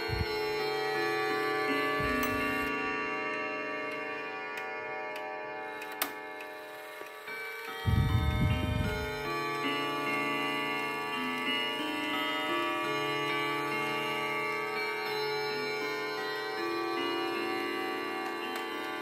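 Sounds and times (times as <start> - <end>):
wall clock chime tune: 0.0 - 19.0
loud low rumble: 7.9 - 9.1.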